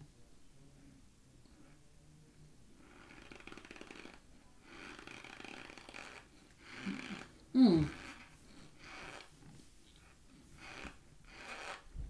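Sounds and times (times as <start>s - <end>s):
person breathing: 6.3s - 9.2s.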